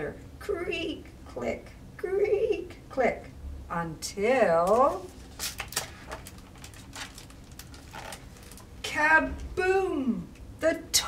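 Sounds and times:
paper page being turned: 0:04.8 - 0:08.7.

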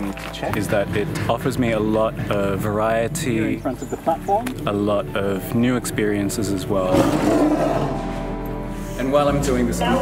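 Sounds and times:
background music: 0:00.0 - 0:10.0
tiger roaring: 0:06.9 - 0:08.2.

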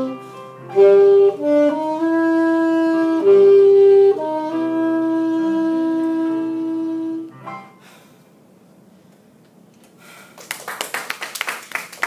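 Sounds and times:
people clapping: 0:10.3 - 0:12.0.

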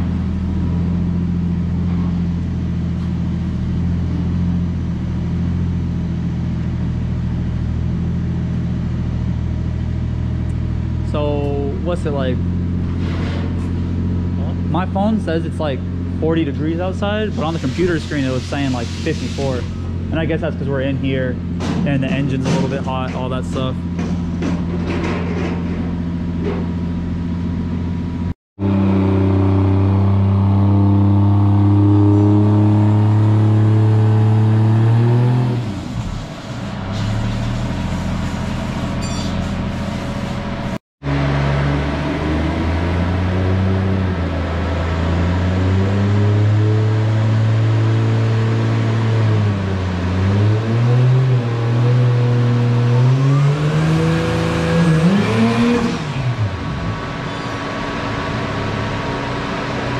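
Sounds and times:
car engine running on dyno: 0:00.0 - 0:59.9.

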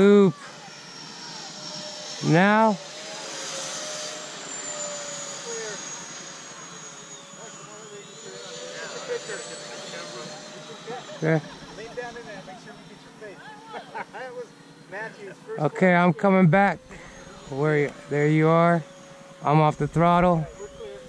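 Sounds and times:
high whine of model jets: 0:00.0 - 0:21.0.

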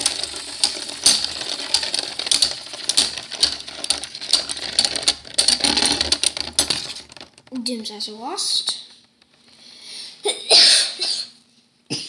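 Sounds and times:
person coughing: 0:10.2 - 0:11.3.

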